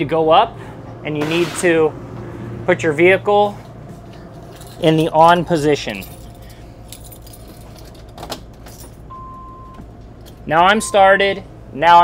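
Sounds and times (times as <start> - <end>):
generator humming: 0.0 - 12.0
keys jangling in ignition: 4.0 - 9.5, 10.1 - 10.5.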